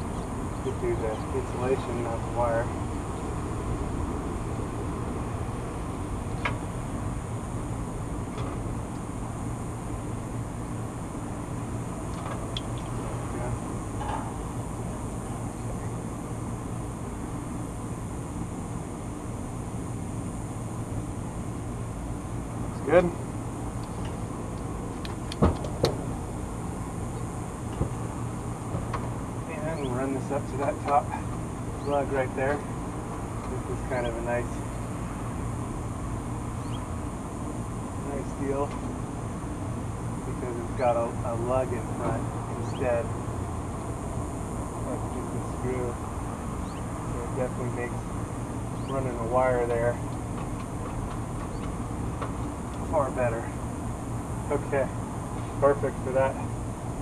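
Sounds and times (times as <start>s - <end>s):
low machine hum: 0.0s - 57.0s.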